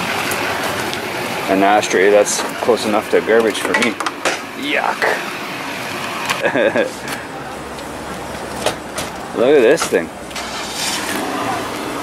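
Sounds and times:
outdoor traffic noise: 0.0s - 12.0s.

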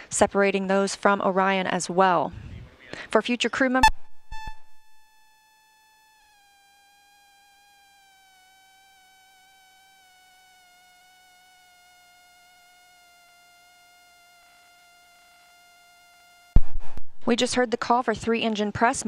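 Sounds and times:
faint electronic tone dropping in pitch: 3.8s - 5.3s.

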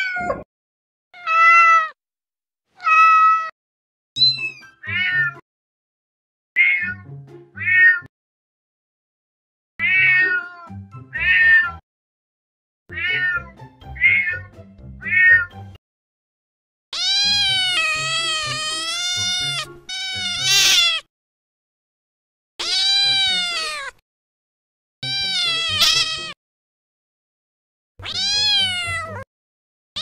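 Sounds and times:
cat meowing: 0.0s - 0.5s, 1.2s - 2.0s, 2.8s - 3.5s, 4.2s - 5.4s, 6.6s - 8.1s, 9.8s - 11.8s, 12.9s - 15.6s, 17.0s - 21.1s, 22.6s - 24.0s, 25.0s - 26.4s, 28.0s - 29.3s.

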